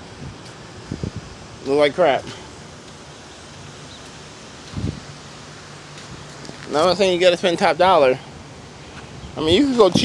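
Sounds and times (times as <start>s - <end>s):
wind on microphone: 0.0s - 1.5s, 4.7s - 5.2s, 9.1s - 10.0s.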